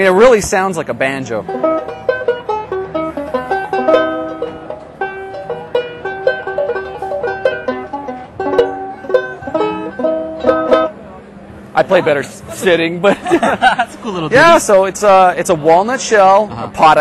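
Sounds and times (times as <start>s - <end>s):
banjo ukulele picking: 1.3s - 11.2s.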